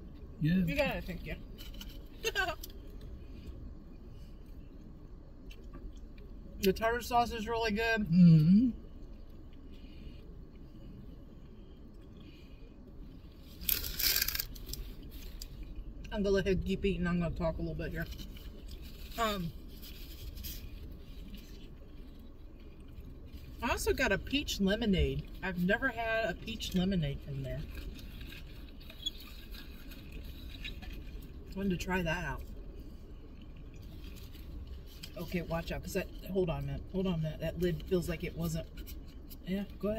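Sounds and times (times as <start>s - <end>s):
people chewing food: 1.5s - 6.5s, 8.2s - 16.1s, 18.0s - 23.6s, 27.6s - 31.8s, 32.4s - 35.4s
faint clicks and rustles: 8.9s - 16.2s, 18.0s - 24.4s, 26.4s - 31.7s, 32.4s - 36.8s
food wrapper crackling: 13.6s - 15.7s.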